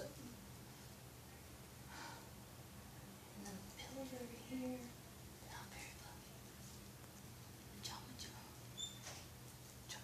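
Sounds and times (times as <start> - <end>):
woman whispering: 3.4 - 6.5, 7.7 - 8.6.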